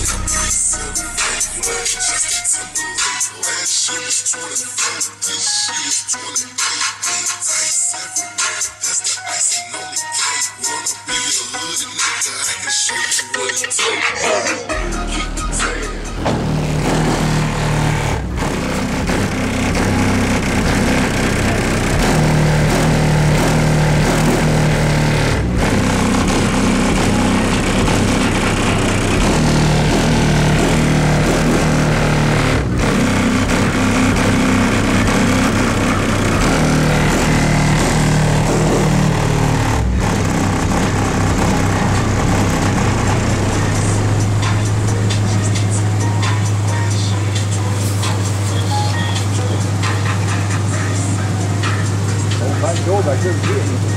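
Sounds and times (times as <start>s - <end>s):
bass-heavy music through subwoofers: 0.0s - 53.9s.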